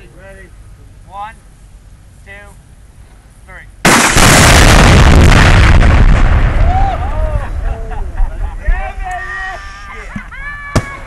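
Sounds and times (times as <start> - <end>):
very loud explosion: 3.8 - 7.6.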